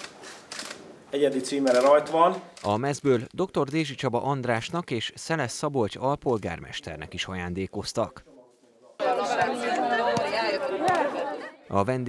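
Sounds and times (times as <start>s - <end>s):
people chattering: 6.8s - 11.8s.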